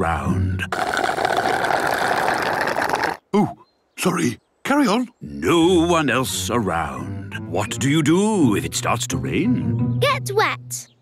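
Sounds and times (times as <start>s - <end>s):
drink slurped through a straw: 0.7s - 3.2s.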